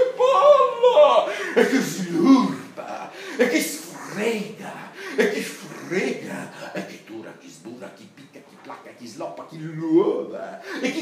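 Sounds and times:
man making wordless vocal sounds: 0:00.0 - 0:11.0.

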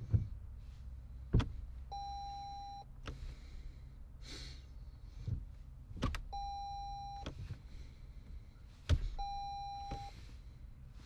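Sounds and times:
low cabin hum: 0:00.0 - 0:11.0
car dashboard chime beep: 0:01.9 - 0:02.9, 0:06.3 - 0:07.3, 0:09.2 - 0:10.1.

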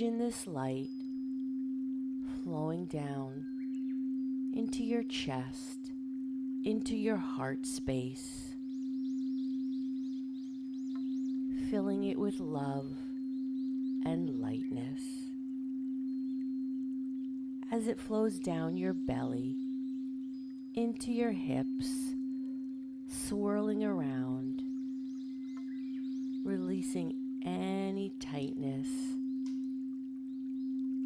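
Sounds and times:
crystal singing bowl tone: 0:00.0 - 0:31.0.

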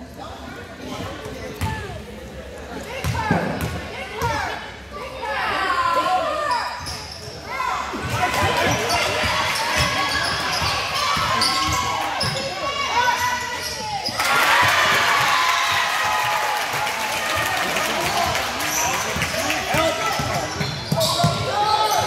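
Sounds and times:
crowd and players shouting: 0:07.4 - 0:22.0
crowd cheering and clapping: 0:14.2 - 0:20.1.

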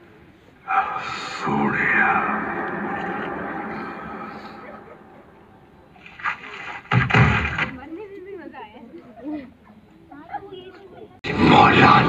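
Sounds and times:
film soundtrack over speakers: 0:00.6 - 0:07.8, 0:11.2 - 0:12.0
heavy thud-like impact: 0:06.2 - 0:07.8.

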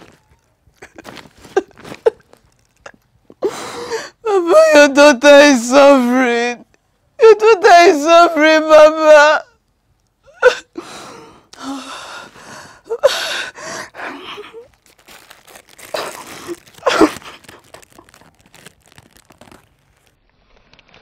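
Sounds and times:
plastic wrapper crinkling: 0:00.0 - 0:03.4, 0:14.0 - 0:21.0
woman sobbing: 0:00.8 - 0:06.6, 0:07.2 - 0:09.6, 0:10.2 - 0:14.8, 0:15.7 - 0:18.8.

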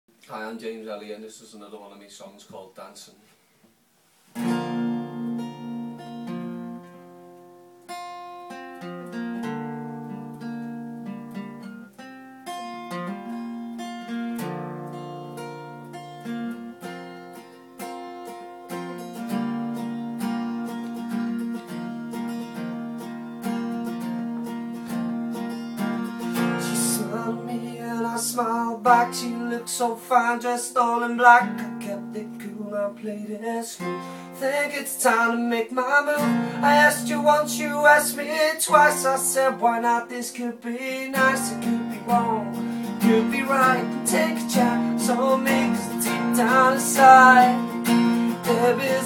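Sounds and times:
acoustic guitar strumming: 0:04.3 - 0:49.0.

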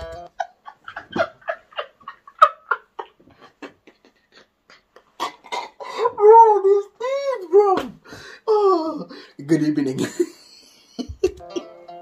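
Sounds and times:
man laughing: 0:00.1 - 0:05.5, 0:09.6 - 0:11.8.

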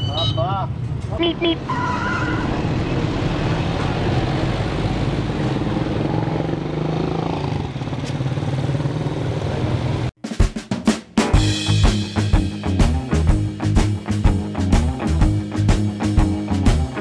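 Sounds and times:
road and traffic noise: 0:00.0 - 0:10.1.

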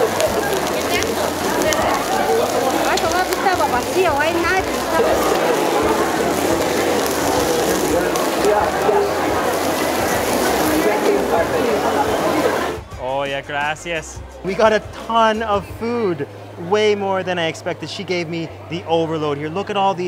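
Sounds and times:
meat sizzling on a grill: 0:00.0 - 0:12.8
people talking: 0:00.0 - 0:20.0.

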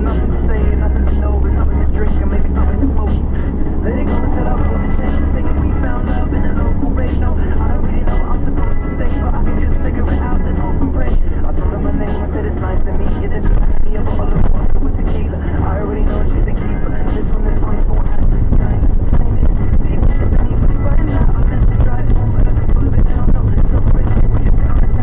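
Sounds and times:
radio playing voices and music: 0:00.0 - 0:25.0
road and engine drone in van: 0:00.0 - 0:25.0.

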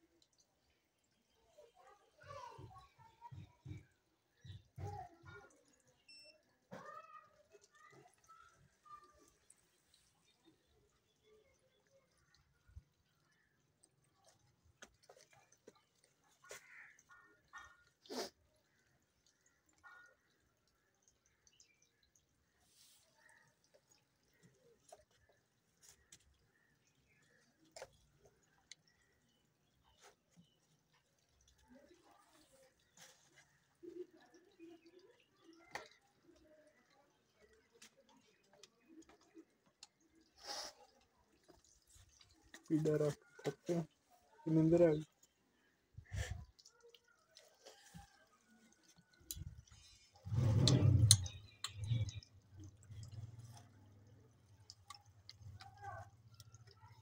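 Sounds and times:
faint clicks and handling sounds: 0:03.3 - 0:44.2.

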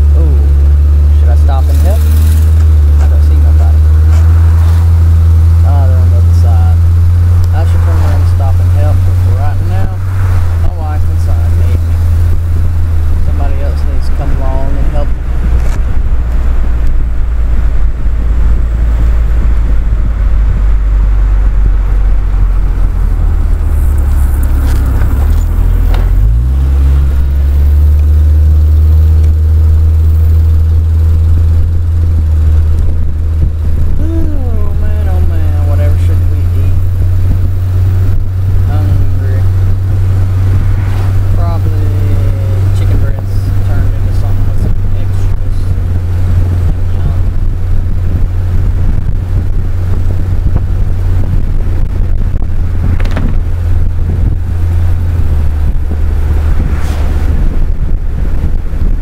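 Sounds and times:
car engine accelerating: 0:00.0 - 0:59.0
wind rumbling on microphone: 0:00.0 - 0:59.0.

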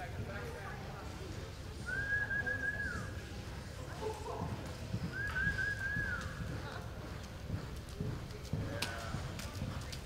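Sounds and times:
horse hooves thudding in dirt: 0:04.3 - 0:10.0.

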